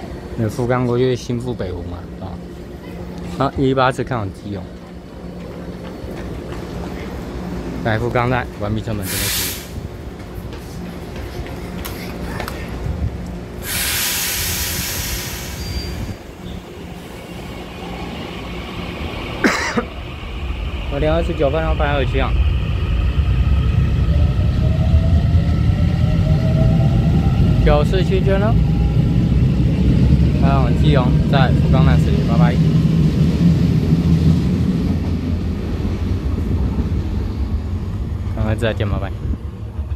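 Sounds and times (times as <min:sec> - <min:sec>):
electric train rumbling: 0:00.0 - 0:39.9
compressed-air hiss: 0:09.0 - 0:09.8, 0:13.6 - 0:16.2.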